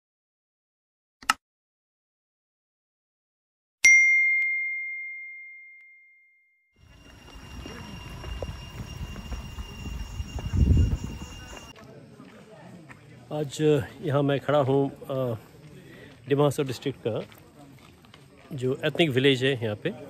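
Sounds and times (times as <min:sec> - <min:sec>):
bright bell ding: 0:03.8 - 0:11.7
faint steady high tones: 0:06.8 - 0:11.8.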